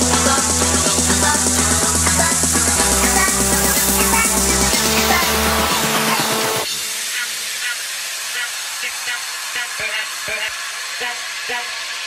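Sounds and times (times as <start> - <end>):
chopped vocal blips: 0.0 - 11.7
electronic dance track: 0.0 - 12.0
white noise hiss: 0.0 - 12.0.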